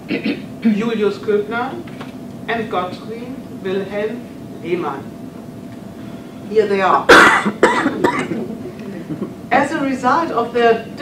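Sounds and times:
woman coughing: 0:00.0 - 0:00.5, 0:07.1 - 0:09.3.

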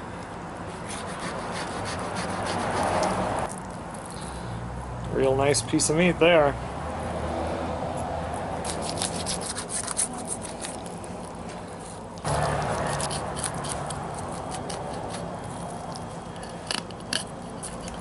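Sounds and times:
knife scraping along fish bones: 0:00.7 - 0:03.2, 0:08.6 - 0:15.3
low background hum: 0:07.9 - 0:18.0.

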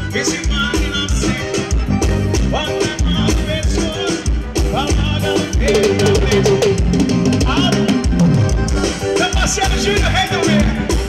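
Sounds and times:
bass notes: 0:00.0 - 0:11.0
bending melody line: 0:00.0 - 0:11.0
drum kit beat: 0:00.0 - 0:11.0
live band playing: 0:00.0 - 0:11.0.

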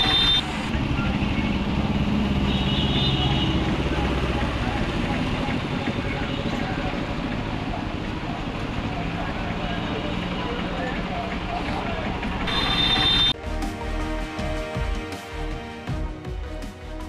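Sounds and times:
motorcycle engines at low speed: 0:00.0 - 0:13.4.

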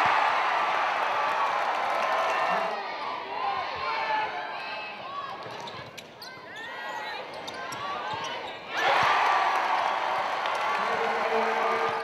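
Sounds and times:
crowd cheering and shouting: 0:00.0 - 0:05.0, 0:08.7 - 0:12.0
sneaker squeaks: 0:05.5 - 0:08.7.

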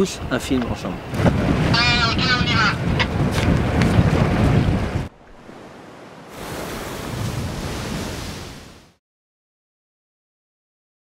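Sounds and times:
wind buffeting microphone: 0:00.0 - 0:08.8
waves washing: 0:00.0 - 0:09.0.

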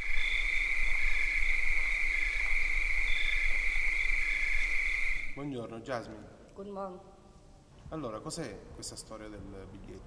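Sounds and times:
crickets trilling: 0:00.0 - 0:05.4.

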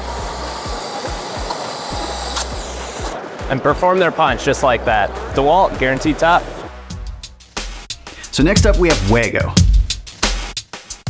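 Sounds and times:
power tool whirring: 0:00.0 - 0:03.2.

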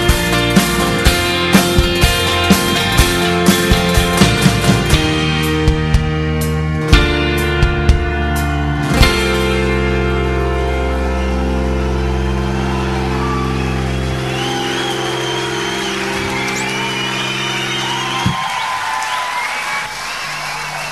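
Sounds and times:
rock band held chord: 0:00.0 - 0:18.7
crowd cheering and whistling: 0:10.6 - 0:20.9.

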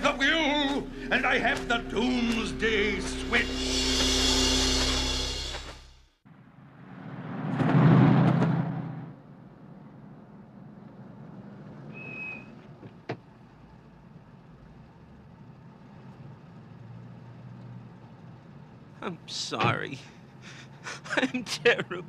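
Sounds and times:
loud whoosh: 0:00.0 - 0:06.0
car engine humming: 0:00.0 - 0:06.1
short high squeak: 0:11.9 - 0:12.6.

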